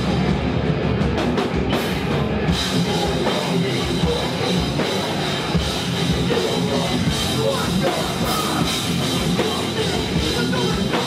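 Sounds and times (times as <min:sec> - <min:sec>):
drum kit pounding: 0:00.0 - 0:11.0
heavy rock band playing live: 0:00.0 - 0:11.0.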